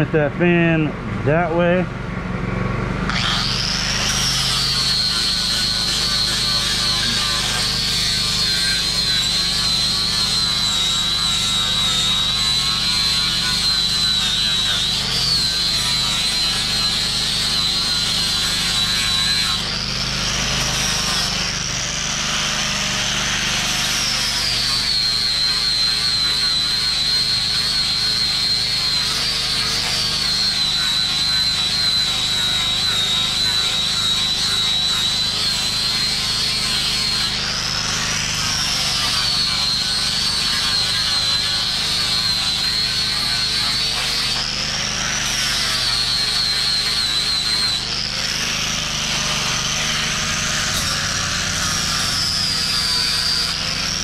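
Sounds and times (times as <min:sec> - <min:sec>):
angle grinder grinding wood: 0:00.0 - 0:54.0.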